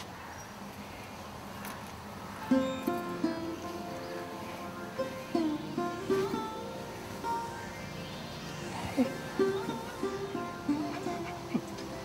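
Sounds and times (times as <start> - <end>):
plucked string instrument melody: 2.5 - 12.0.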